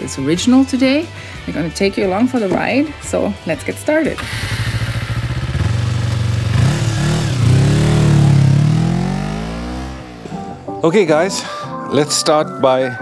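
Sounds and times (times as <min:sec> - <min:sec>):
motorcycle engine idling and revving: 0:02.0 - 0:10.7.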